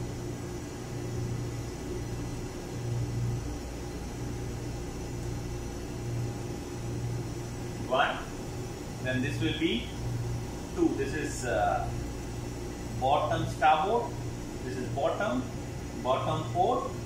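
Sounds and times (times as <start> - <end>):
machinery and ventilation hum: 0.0 - 17.0.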